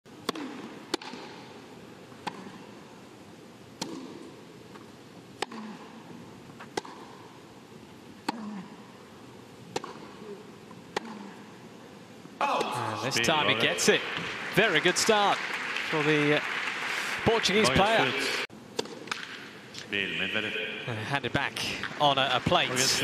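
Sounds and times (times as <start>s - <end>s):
racket hitting tennis ball: 0.2s - 2.7s, 3.7s - 6.0s, 6.6s - 7.3s, 8.2s - 8.7s, 9.7s - 10.2s, 10.9s - 11.4s, 18.7s - 19.5s.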